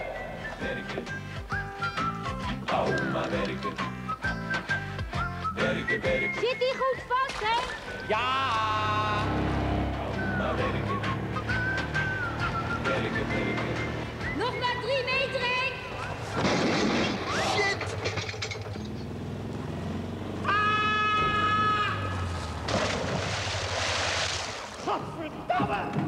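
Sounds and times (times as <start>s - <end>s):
music: 0.0s - 16.0s
people shouting: 8.0s - 9.4s, 20.4s - 22.3s
car engine pulling away: 8.0s - 14.4s, 15.2s - 24.0s
tyres on gravel: 20.3s - 26.0s.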